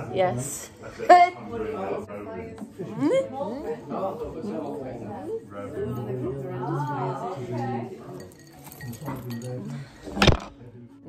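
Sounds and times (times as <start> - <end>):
glassware clinking: 8.1 - 9.9.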